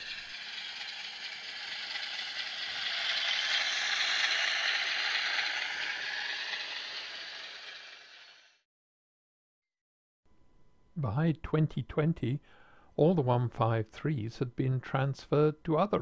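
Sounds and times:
model train rattling on track: 0:00.0 - 0:08.5.

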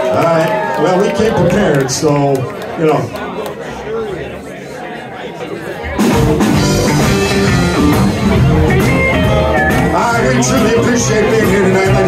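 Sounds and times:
live blues band playing: 0:05.8 - 0:12.0.

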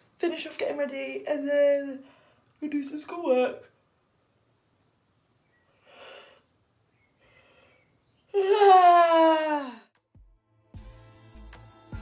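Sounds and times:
faint breaths: 0:02.0 - 0:02.6, 0:05.6 - 0:08.3
girl yawning: 0:08.3 - 0:10.0.

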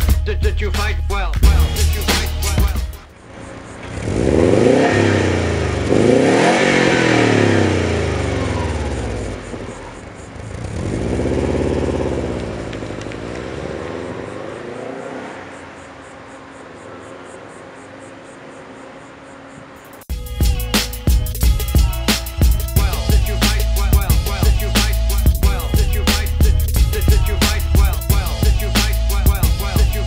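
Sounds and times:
car engine revving: 0:00.0 - 0:30.0.

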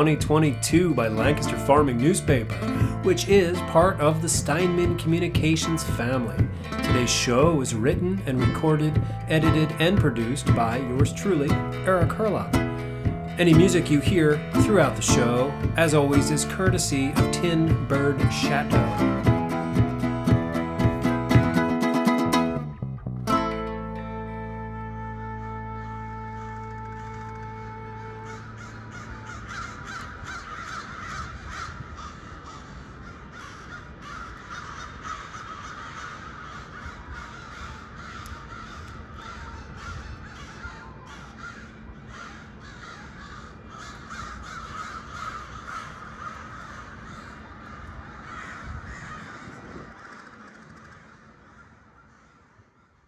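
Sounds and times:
birds calling in chorus: 0:28.3 - 0:52.4.

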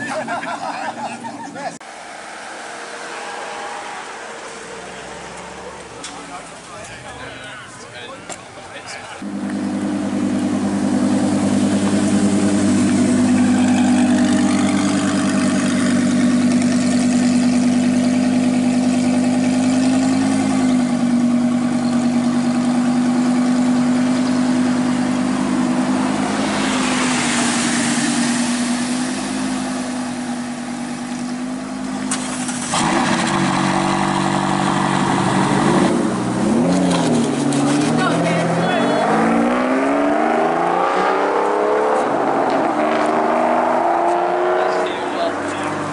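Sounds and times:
car engine idling: 0:09.2 - 0:39.0
engine revving: 0:09.2 - 0:45.3
car accelerating hard: 0:09.2 - 0:45.9.

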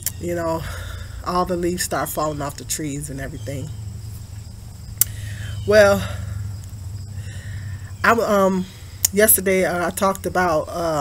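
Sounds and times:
insects chirring: 0:00.0 - 0:11.0
steady low hum: 0:00.0 - 0:11.0.

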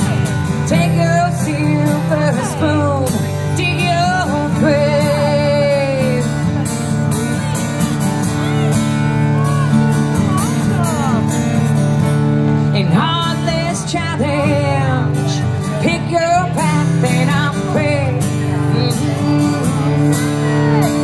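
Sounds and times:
person singing: 0:00.0 - 0:06.7, 0:12.6 - 0:21.0
acoustic guitar strumming: 0:00.0 - 0:21.0.

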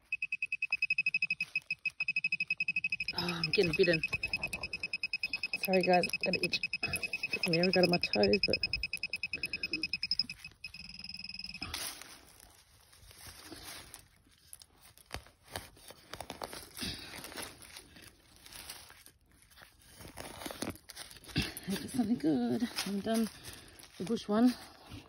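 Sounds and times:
fast pulsing beep: 0:00.0 - 0:11.6.

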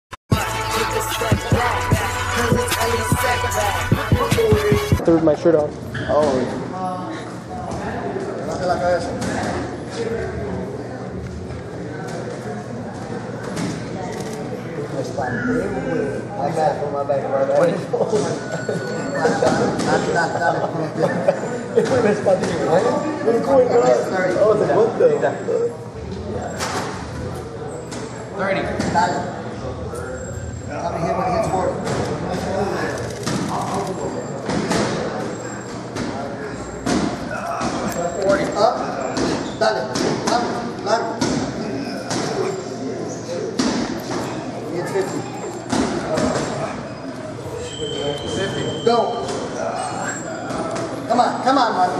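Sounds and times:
indistinct voices echoing: 0:00.3 - 0:05.1
sharp thuds in echoing room: 0:35.9 - 0:37.9, 0:39.1 - 0:42.4, 0:43.5 - 0:44.4, 0:45.7 - 0:46.6.

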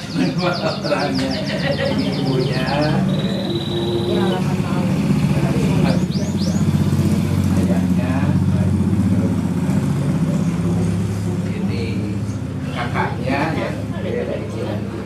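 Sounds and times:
faint voices: 0:00.0 - 0:15.0.

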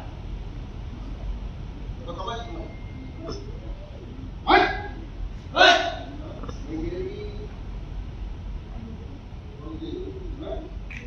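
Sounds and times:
students shouting kiai: 0:05.6 - 0:06.1.

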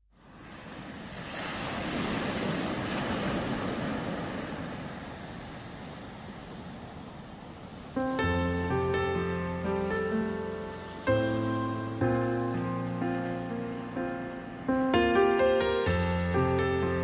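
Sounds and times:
ocean surf: 0:00.1 - 0:17.0.

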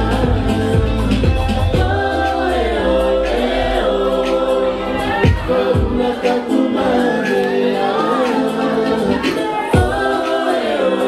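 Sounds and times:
light band backing: 0:00.0 - 0:02.4
deep bass: 0:00.0 - 0:06.2
women singing in harmony: 0:00.0 - 0:11.0.

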